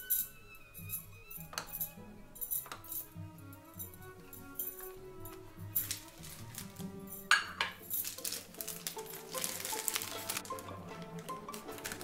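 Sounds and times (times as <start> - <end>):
light clinks: 0.0 - 8.6
background music: 0.0 - 12.0
dish clattering on countertop: 7.3 - 7.9.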